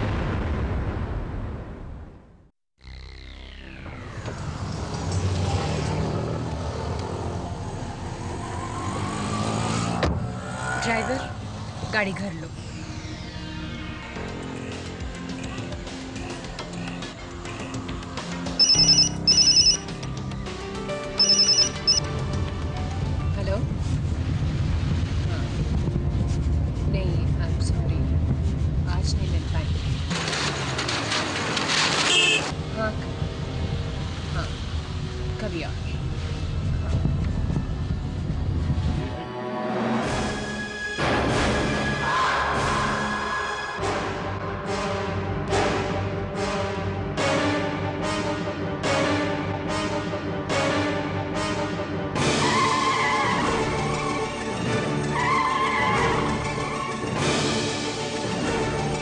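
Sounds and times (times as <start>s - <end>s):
car engine low rumble: 32.6s - 39.2s.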